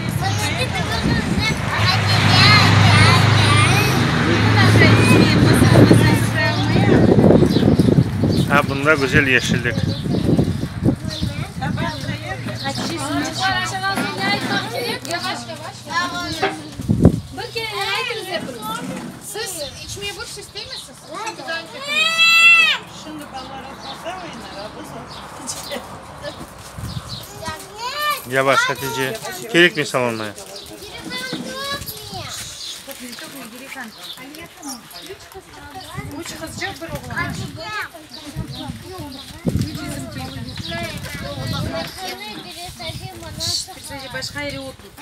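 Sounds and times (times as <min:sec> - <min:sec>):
chatter of voices: 0:00.0 - 0:45.0.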